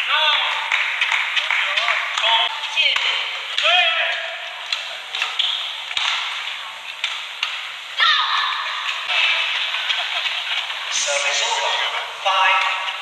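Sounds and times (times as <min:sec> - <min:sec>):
arena crowd noise: 0:00.0 - 0:13.0
racket hitting shuttlecock: 0:04.7 - 0:06.4
shoe squeak on court: 0:05.4 - 0:05.7.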